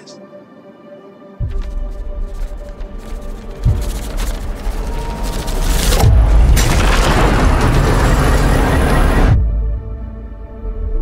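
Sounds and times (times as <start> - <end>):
dense earthquake rumble: 1.4 - 11.0
deep boom: 5.9 - 10.0.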